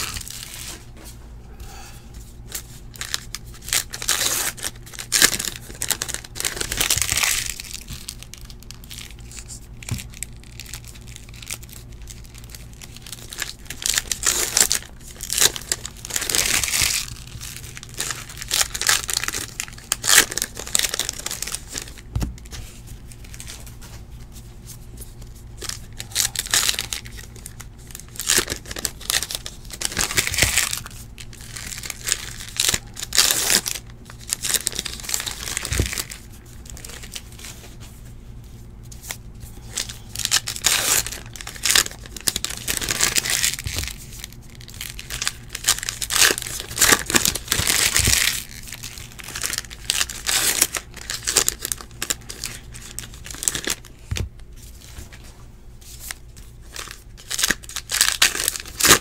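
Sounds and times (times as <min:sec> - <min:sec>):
wrappers tearing and crinkling: 0:00.0 - 0:00.8, 0:02.4 - 0:23.9, 0:24.8 - 0:37.8, 0:39.0 - 0:55.2, 0:55.8 - 0:59.0.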